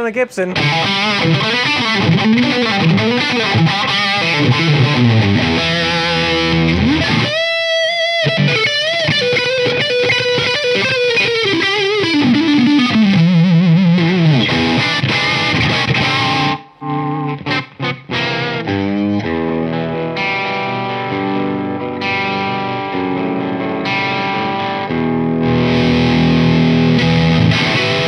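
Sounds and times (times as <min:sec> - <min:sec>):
overdriven electric guitar: 0:00.5 - 0:28.0.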